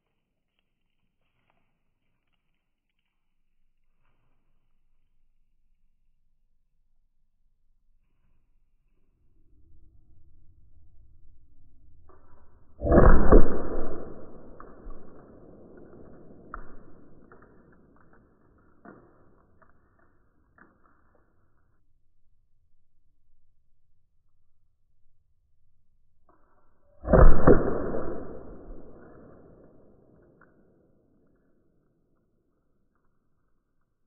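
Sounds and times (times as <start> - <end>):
slowed deep projectile impact: 9.3 - 18.1, 27.0 - 30.1
launcher firing loud report: 12.8 - 17.6, 27.0 - 30.0
round hitting target board: 12.8 - 19.7, 27.0 - 30.5.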